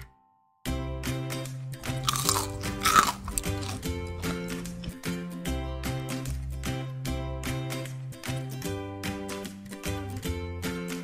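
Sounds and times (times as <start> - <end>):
background music with steady beat: 0.7 - 11.0
crisp food crunching: 1.8 - 4.4.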